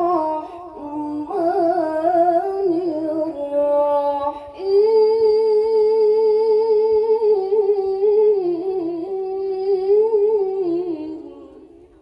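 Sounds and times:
woman reciting melodically: 0.0s - 12.0s.

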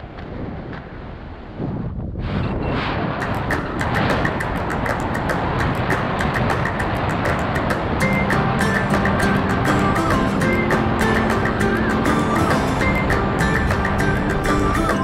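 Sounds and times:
wind rumbling on microphone: 0.0s - 15.0s
background music with quick beat: 3.2s - 15.0s.

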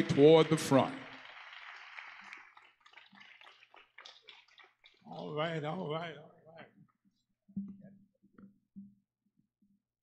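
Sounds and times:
faint scattered hand claps: 0.0s - 5.2s.

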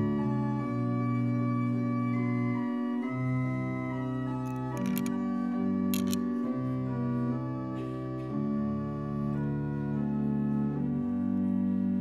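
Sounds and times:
short clicks: 4.5s - 5.1s, 6.0s - 6.2s.

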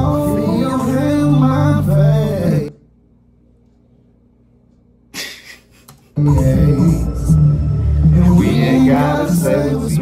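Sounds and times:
song music: 0.0s - 2.7s, 6.2s - 10.0s.

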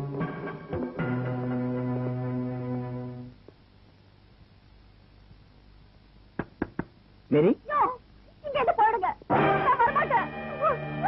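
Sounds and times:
knocks on wooden door: 6.4s - 7.0s.

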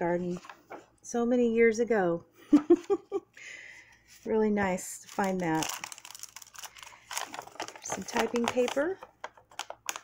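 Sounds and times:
paper rustling and crackling: 5.0s - 10.0s.

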